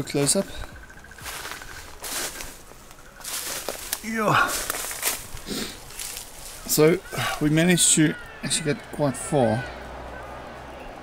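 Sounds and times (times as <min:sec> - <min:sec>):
person sniffing: 0:05.4 - 0:05.8.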